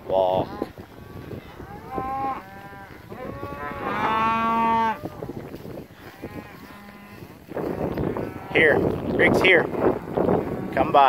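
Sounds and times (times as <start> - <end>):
cattle mooing: 1.3 - 5.2, 6.0 - 8.8, 9.6 - 11.0.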